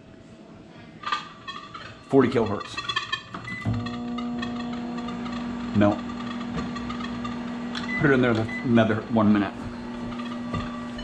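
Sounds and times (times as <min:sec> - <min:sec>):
microwave oven humming: 0:03.3 - 0:11.0.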